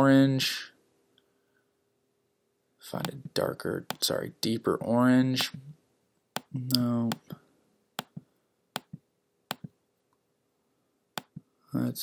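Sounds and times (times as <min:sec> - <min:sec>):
computer mouse clicks: 0:08.8 - 0:09.7.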